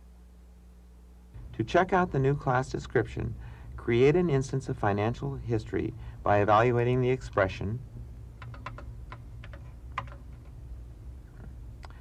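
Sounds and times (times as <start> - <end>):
low hum: 0.0 - 12.0
computer keyboard typing: 8.4 - 10.5.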